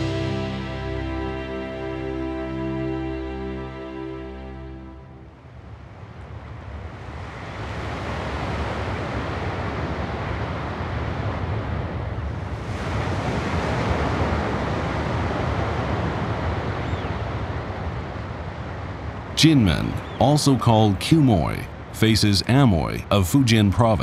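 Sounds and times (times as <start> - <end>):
ocean surf: 0.0 - 24.0
wind: 0.0 - 24.0.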